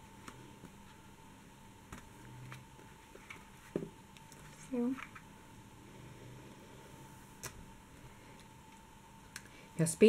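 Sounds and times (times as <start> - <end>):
paper album pages handled: 1.9 - 5.2.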